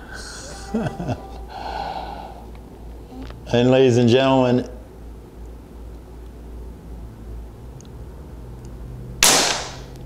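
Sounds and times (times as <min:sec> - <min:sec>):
man laughing: 0:00.2 - 0:01.6
breathy exhale: 0:01.5 - 0:02.6.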